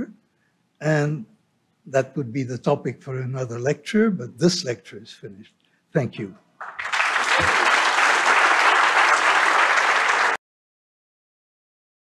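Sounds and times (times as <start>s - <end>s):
audience applauding: 6.6s - 10.4s.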